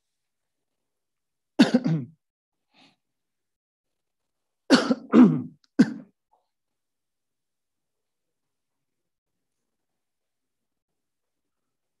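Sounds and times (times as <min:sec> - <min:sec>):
person coughing: 0:01.6 - 0:02.2, 0:04.7 - 0:06.1.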